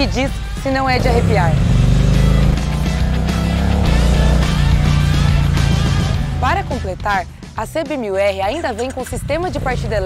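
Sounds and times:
background music: 0.0 - 10.0
motorcycle engine running: 0.0 - 10.0.

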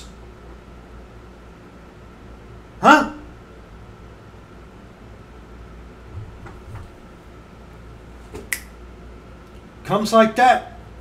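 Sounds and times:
finger snap: 8.4 - 8.8.

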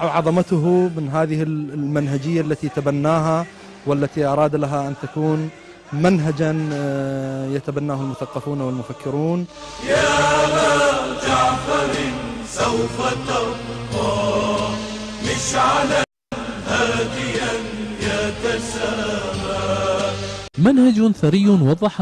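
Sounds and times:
group of voices chanting: 7.9 - 20.5.

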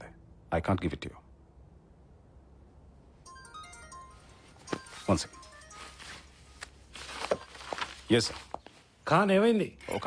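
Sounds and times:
faint low hum: 0.0 - 10.0
mobile phone ringtone: 3.2 - 6.6.

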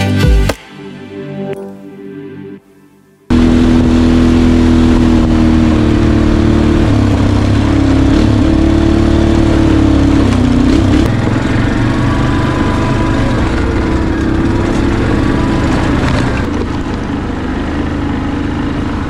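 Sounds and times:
small engine running: 3.3 - 19.0.

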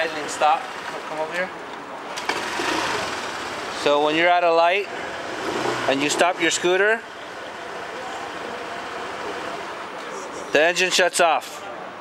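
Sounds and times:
scooter engine idling: 2.2 - 4.0, 4.9 - 10.0.

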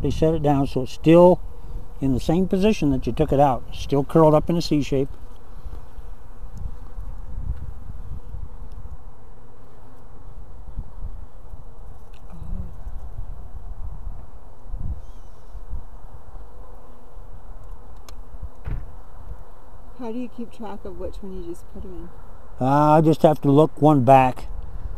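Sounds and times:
honey bees buzzing: 0.0 - 23.4.

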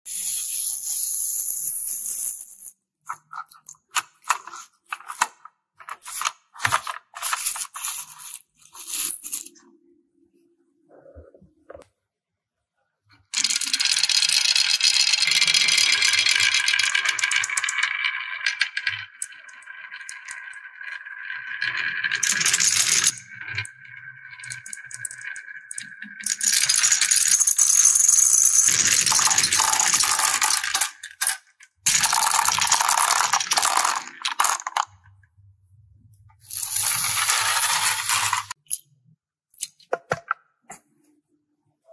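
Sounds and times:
toy truck scraping and clattering: 0.1 - 9.6, 24.4 - 34.9, 36.4 - 38.6
balls rattling down wooden run: 36.8 - 38.6.

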